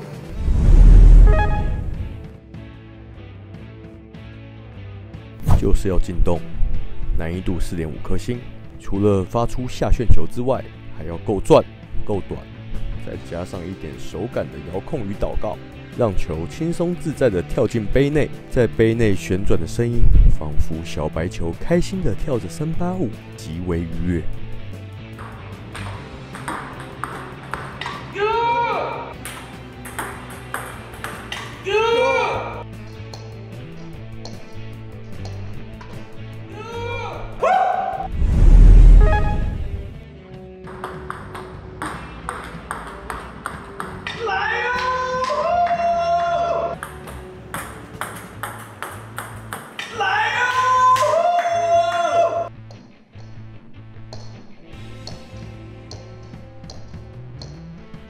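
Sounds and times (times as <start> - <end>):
loud low boom: 0.3 - 2.3, 38.1 - 40.0
guitar music: 1.2 - 2.3.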